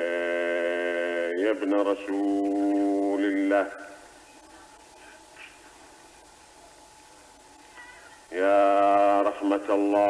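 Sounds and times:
tape hiss and hum: 0.0 - 10.0.

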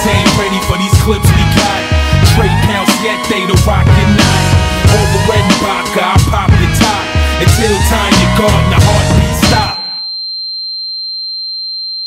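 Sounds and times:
high-pitched electronic tone: 9.4 - 10.3.

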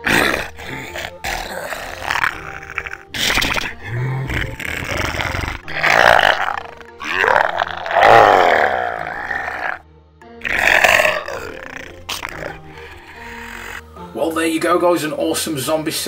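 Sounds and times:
zombie growls and groans: 0.0 - 9.8, 10.4 - 13.9
background music: 0.0 - 16.0.

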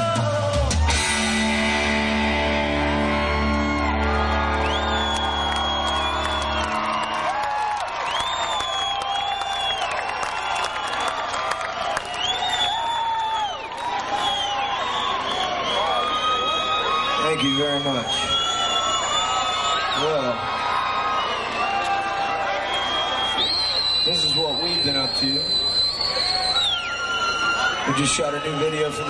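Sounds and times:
crowd cheering: 0.5 - 29.0
rock band holding chord: 0.8 - 7.3
whistles and whoops: 3.0 - 20.4, 21.1 - 29.0.

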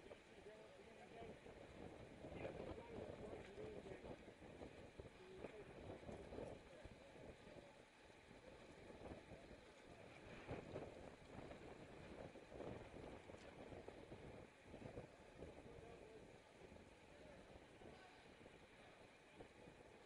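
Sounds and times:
wind noise on camera: 1.2 - 7.7, 8.3 - 20.0.

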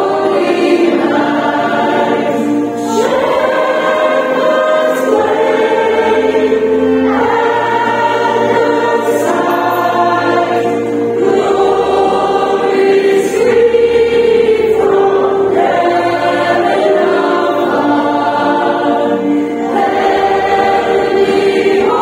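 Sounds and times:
mixed choir singing: 0.0 - 22.0.

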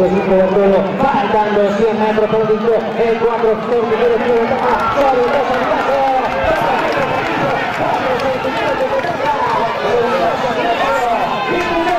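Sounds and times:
race caller talking fast: 0.0 - 11.9.

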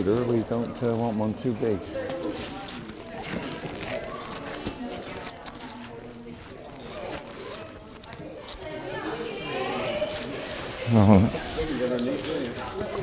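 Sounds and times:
background voices talking: 0.0 - 13.0.

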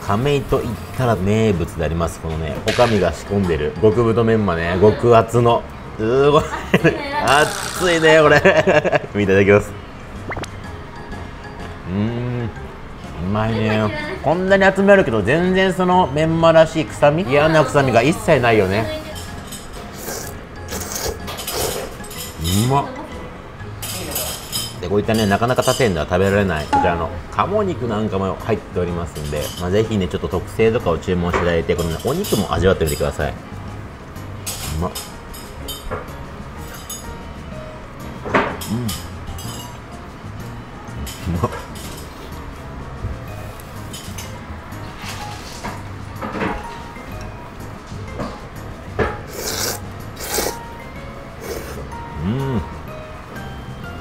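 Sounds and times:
quiet background music: 0.0 - 54.0
man murmuring: 11.9 - 12.6, 52.1 - 52.8
man slurping noodles: 19.9 - 22.0, 49.3 - 50.7, 51.4 - 52.4.

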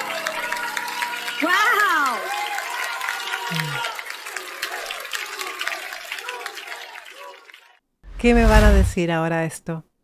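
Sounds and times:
audience applauding: 0.0 - 7.8
crowd cheering: 0.0 - 7.8.

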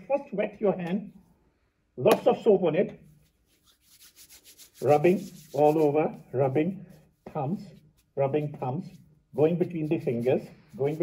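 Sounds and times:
man talking: 0.0 - 1.2, 2.0 - 3.0, 4.8 - 11.0
hands rubbing together: 3.0 - 11.0.

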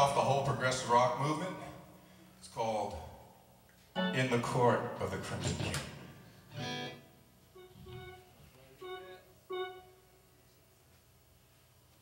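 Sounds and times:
guitar plucked single notes: 6.5 - 10.0.

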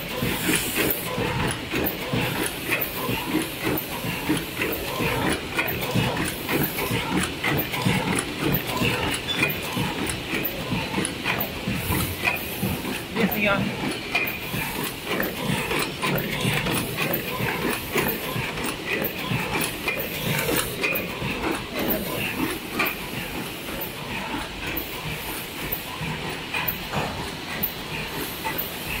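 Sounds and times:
machine clattering: 0.0 - 29.0
machine hissing: 0.0 - 29.0.

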